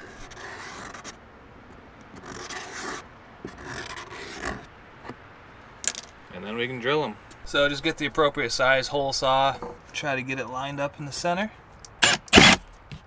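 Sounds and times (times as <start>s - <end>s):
marker pen scratching on plastic: 0.0s - 1.2s, 2.2s - 4.7s.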